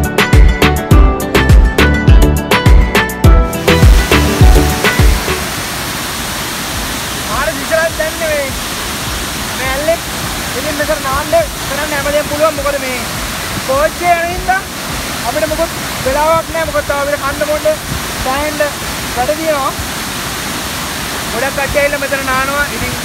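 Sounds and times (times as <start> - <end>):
music track: 0.0 - 5.6
waterfall rushing: 3.2 - 23.0
man talking: 7.2 - 8.6, 9.5 - 19.8, 21.3 - 23.0.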